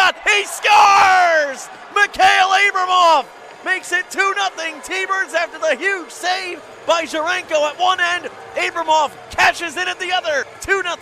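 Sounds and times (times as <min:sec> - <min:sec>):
man shouting excitedly: 0:00.0 - 0:06.4
man talking: 0:00.0 - 0:11.0.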